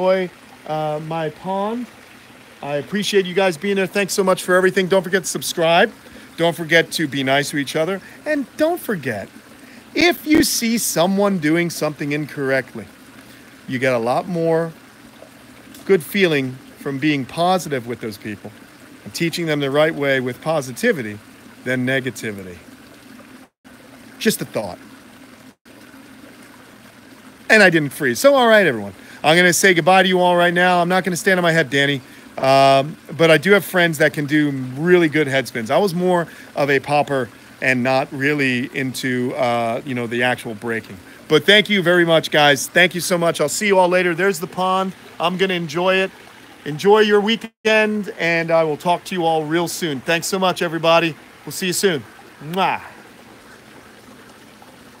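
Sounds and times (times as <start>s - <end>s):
water trickling: 0.0s - 55.0s.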